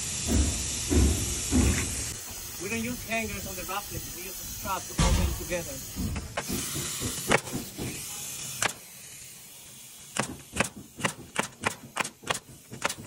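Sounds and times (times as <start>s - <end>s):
nail gun firing: 6.4s - 8.8s, 10.1s - 13.0s.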